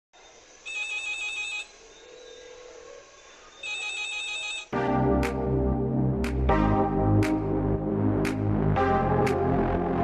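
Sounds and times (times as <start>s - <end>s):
telephone ringing: 0.7s - 1.7s, 3.6s - 4.7s.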